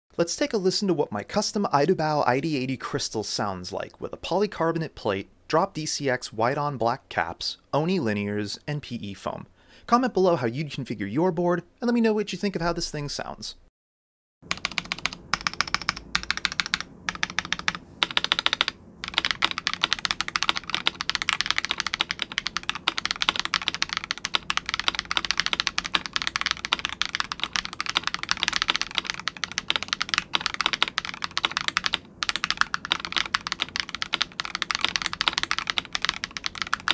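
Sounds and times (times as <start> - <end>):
mechanical keyboard clacking: 14.5 - 36.9.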